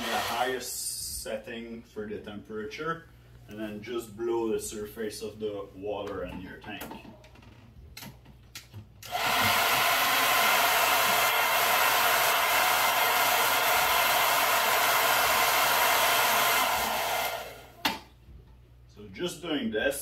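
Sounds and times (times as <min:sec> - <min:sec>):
hair dryer blowing: 0:00.0 - 0:00.7, 0:09.0 - 0:17.8.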